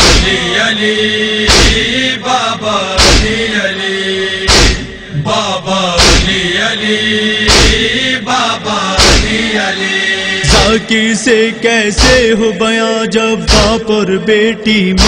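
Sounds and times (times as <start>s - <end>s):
chorus of voices chanting: 0.0s - 13.9s
chest-beating rhythm: 4.5s - 5.2s, 7.5s - 8.0s, 10.4s - 10.9s.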